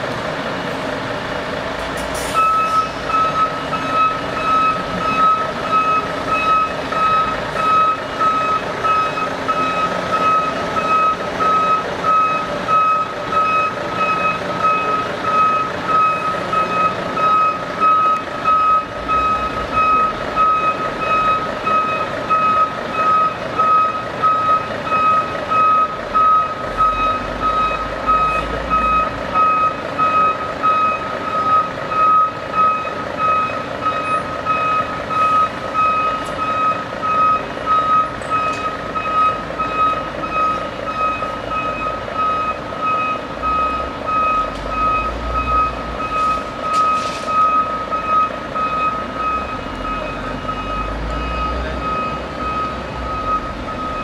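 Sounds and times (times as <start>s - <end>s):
diesel engines running: 0.0s - 54.0s
truck reversing alarm beeping: 0.0s - 54.0s.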